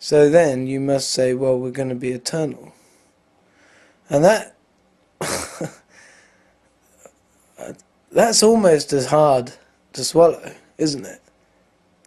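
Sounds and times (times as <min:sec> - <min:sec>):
faint breath: 0:02.7 - 0:04.1, 0:05.9 - 0:06.6
man coughing: 0:05.2 - 0:06.0.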